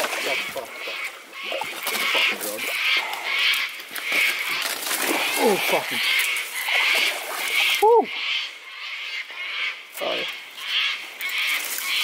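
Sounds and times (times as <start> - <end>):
high-pitched animal calls: 0.0 - 12.0.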